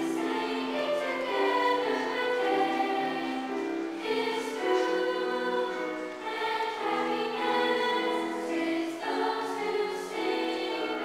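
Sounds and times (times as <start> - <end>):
children's choir singing: 0.0 - 11.0.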